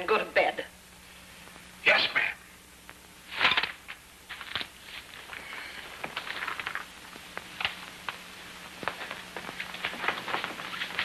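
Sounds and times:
cloth rustling: 4.3s - 11.0s.

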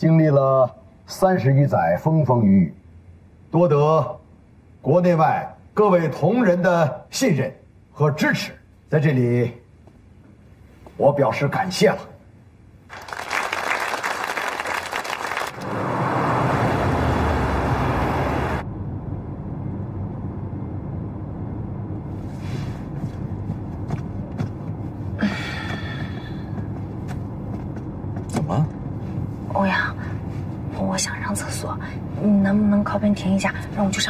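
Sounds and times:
audience applauding: 12.9s - 15.6s
car interior rumble: 15.1s - 34.0s.

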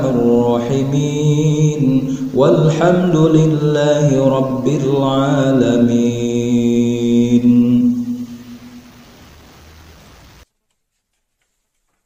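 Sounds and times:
faint hiss: 4.5s - 10.5s.

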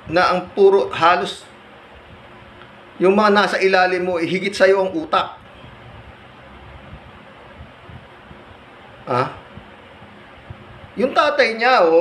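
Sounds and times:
low background hiss: 0.0s - 12.0s
faint low bumps: 5.4s - 11.2s.

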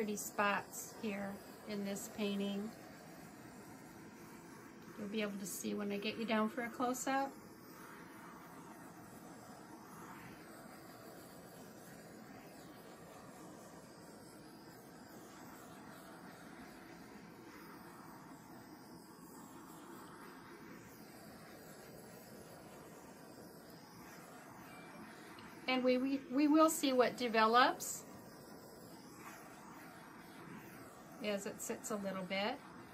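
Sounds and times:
butane torch hissing: 0.0s - 32.9s.

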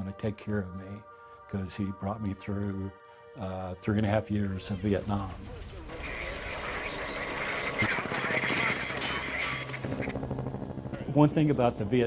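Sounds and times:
sharp crack: 5.2s - 10.2s.

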